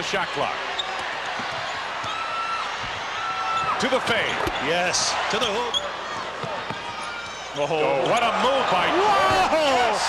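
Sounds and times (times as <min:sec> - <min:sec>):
high shoe squeaks: 0:05.3 - 0:06.0.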